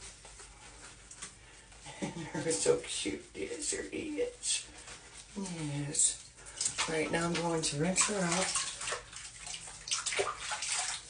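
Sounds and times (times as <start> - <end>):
water splashing over dog: 6.6 - 11.0.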